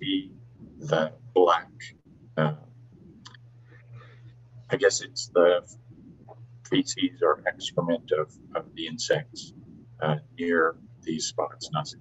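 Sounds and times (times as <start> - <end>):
man saying uh: 0.0 - 2.6, 4.7 - 6.1, 6.7 - 12.0
low hum: 0.0 - 12.0.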